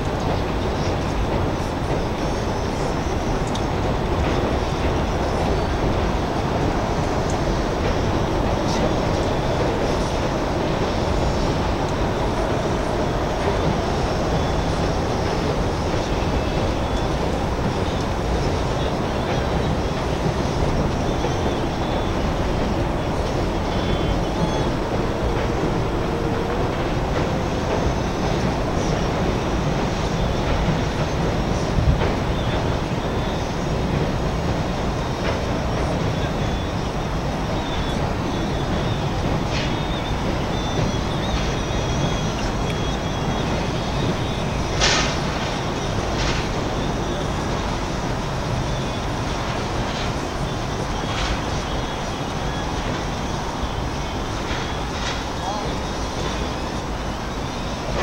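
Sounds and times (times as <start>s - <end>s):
outdoor rumble and hiss: 0.0s - 58.0s.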